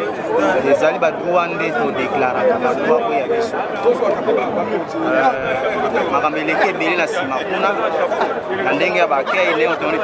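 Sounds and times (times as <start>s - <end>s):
babble of voices: 0.0s - 10.0s.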